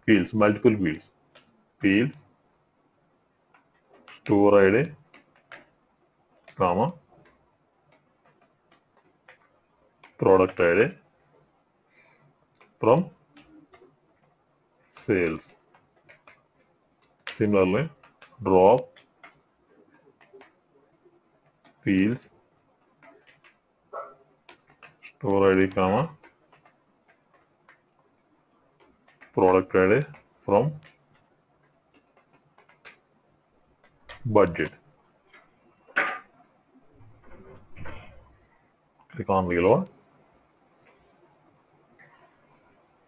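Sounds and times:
keyboard keys typing: 0:03.5 - 0:11.0, 0:12.5 - 0:35.5.

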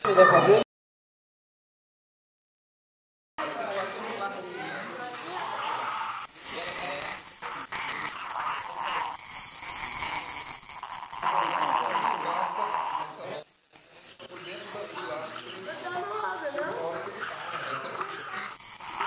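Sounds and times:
indistinct voices talking: 0:11.2 - 0:19.0.

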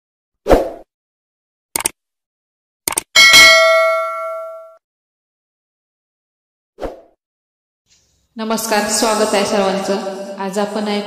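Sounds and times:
quick clicks: 0:01.8 - 0:02.0, 0:02.8 - 0:03.1
bell ringing: 0:03.2 - 0:04.8.

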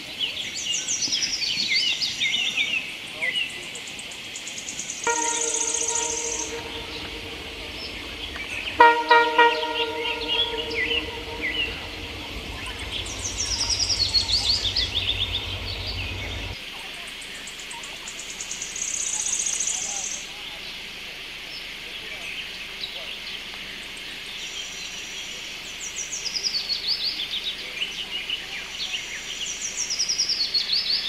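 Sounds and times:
birds chirping: 0:04.8 - 0:16.6
passing train rumble: 0:05.0 - 0:16.6
train horn blasts: 0:05.1 - 0:16.6.

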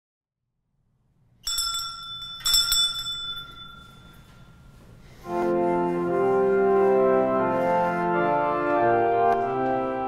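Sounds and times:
small high-pitched church bell: 0:01.4 - 0:04.7.

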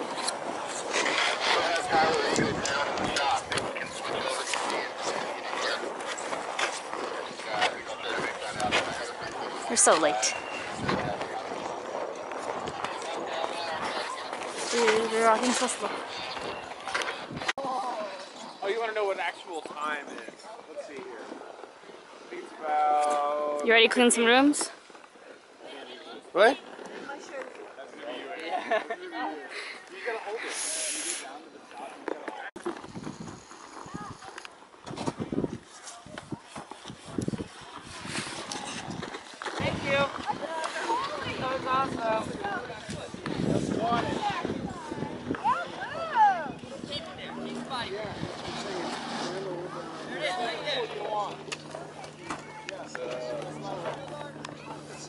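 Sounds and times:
wind gusting on microphone: 0:00.0 - 0:17.6, 0:32.7 - 0:49.4
steady outdoor hiss: 0:15.8 - 0:38.4.

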